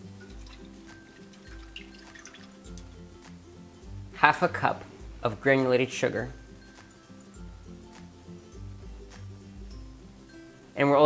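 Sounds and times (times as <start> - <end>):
liquid trickling into saucepan: 0.0 - 3.1
background music with bass line: 0.0 - 11.0.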